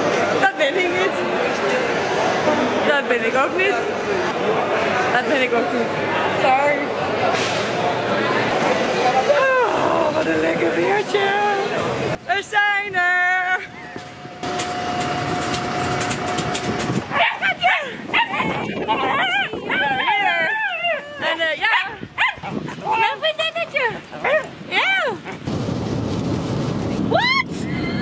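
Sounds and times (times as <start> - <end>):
steady hum: 10.6 - 17.2
women squealing and laughing: 27.1 - 28.0.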